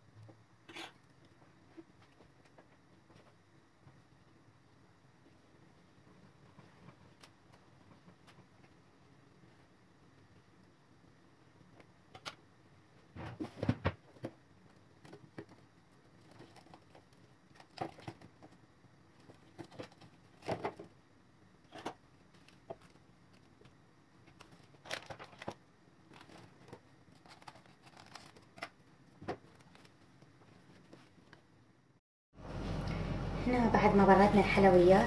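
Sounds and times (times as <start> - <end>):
plastic film crinkling: 24.3 - 28.8.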